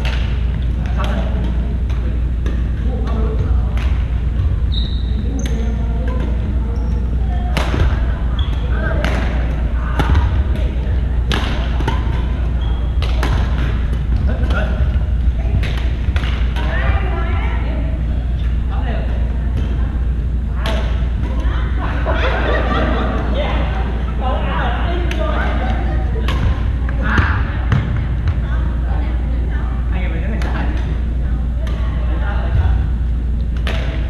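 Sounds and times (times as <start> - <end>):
distant chatter: 0.0 - 34.0
steady low hum: 0.0 - 34.0
sneakers squeaking on floor: 4.4 - 7.2, 8.2 - 9.0, 11.6 - 13.9
rackets smacking shuttlecock: 5.3 - 16.8, 33.5 - 34.0.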